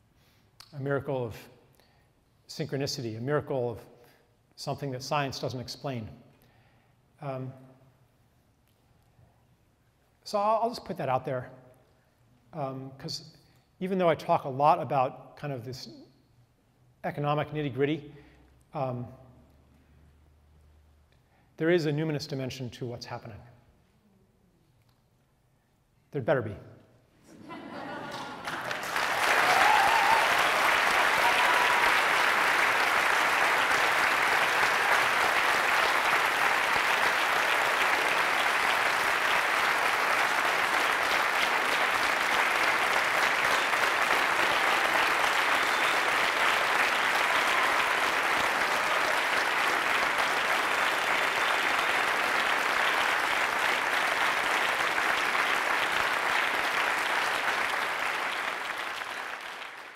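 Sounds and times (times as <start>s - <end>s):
audience applauding: 27.4s - 59.9s.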